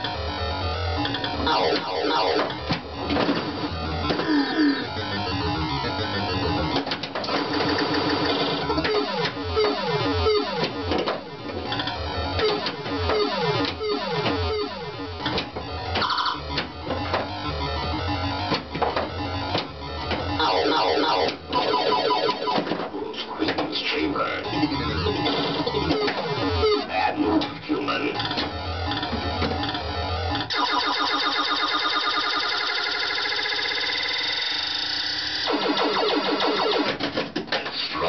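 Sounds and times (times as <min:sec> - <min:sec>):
electronic sound effects: 0:00.0 - 0:22.7, 0:23.4 - 0:36.9
pinball clicks and knocks: 0:01.0 - 0:04.3, 0:06.6 - 0:23.8, 0:25.1 - 0:27.6, 0:28.2 - 0:29.8, 0:35.7 - 0:37.8.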